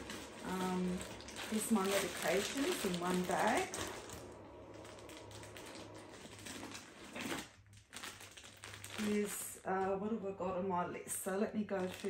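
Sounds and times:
plastic bags rustling: 0.0s - 10.0s, 11.2s - 12.0s.

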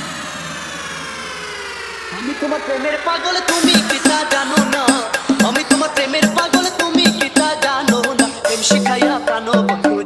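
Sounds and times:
synth sweep gliding downward: 0.0s - 6.2s.

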